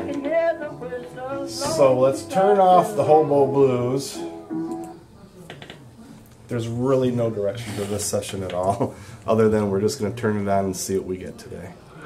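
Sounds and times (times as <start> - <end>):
country blues guitar record: 0.0 - 4.9.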